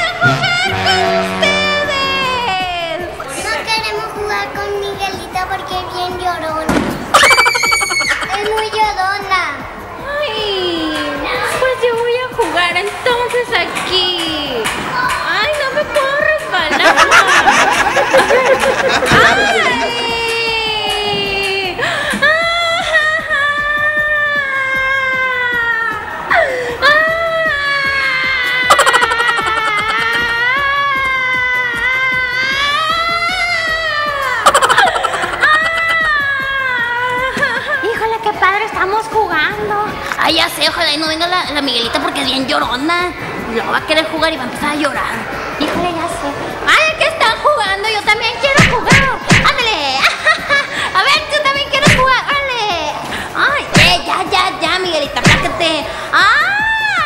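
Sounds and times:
children's voices: 0.0s - 12.4s
background music: 0.0s - 57.0s
high-pitched wail and sobs: 7.2s - 8.4s, 27.8s - 31.9s.

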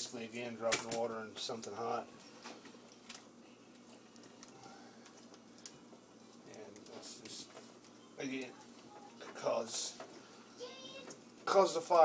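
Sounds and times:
low steady hum: 0.0s - 12.0s
small clicks and foil crinkles: 0.6s - 10.0s.

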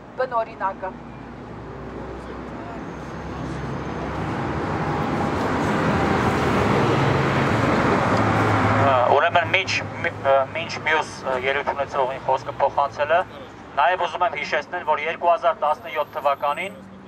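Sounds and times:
vehicle passing close by: 1.3s - 10.7s.

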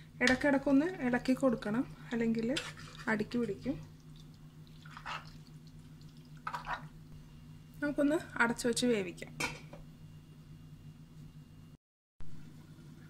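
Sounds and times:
spoon stirring curry in pot: 2.3s - 5.4s.

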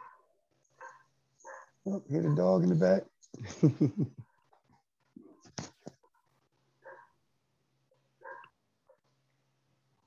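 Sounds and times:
faint dog barks: 0.0s - 3.0s, 6.8s - 7.2s, 7.9s - 9.1s
person laughing: 3.4s - 4.2s.

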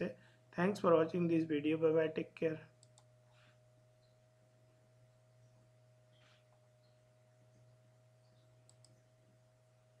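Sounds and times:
faint steady hum: 0.0s - 10.0s
computer mouse clicks: 2.8s - 3.1s, 8.3s - 9.0s.

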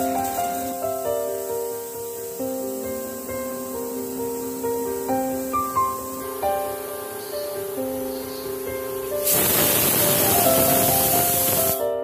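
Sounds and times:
pressure cooker steam hissing: 0.0s - 12.0s.

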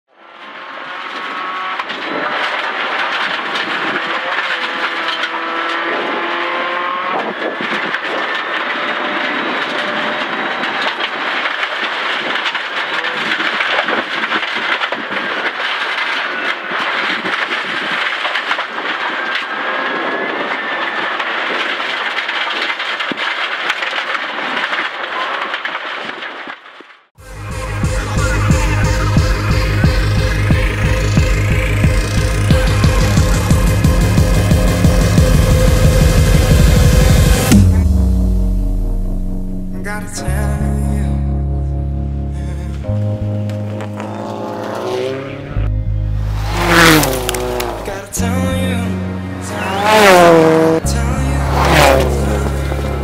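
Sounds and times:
tyres on gravel: 0.1s - 53.0s
car engine revving: 0.2s - 11.6s, 27.3s - 40.0s, 42.0s - 53.0s
stones clicking: 46.4s - 48.0s.

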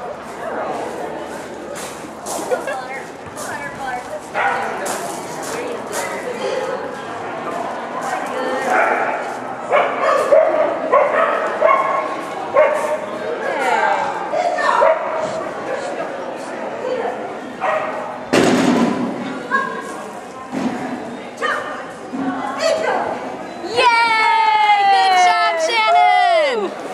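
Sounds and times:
dog barking: 4.4s - 4.8s, 8.7s - 12.0s, 12.6s - 13.0s, 14.8s - 15.2s, 17.6s - 18.0s
loud thump: 18.3s - 19.1s.

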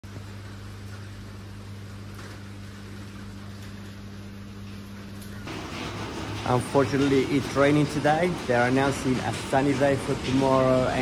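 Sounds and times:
low electrical hum: 0.0s - 11.0s
rain falling on concrete: 0.1s - 11.0s.

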